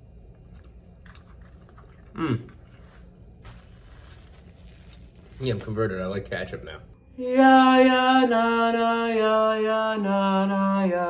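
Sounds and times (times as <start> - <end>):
man chewing: 0.3 - 3.5
man humming hmm: 2.1 - 2.6.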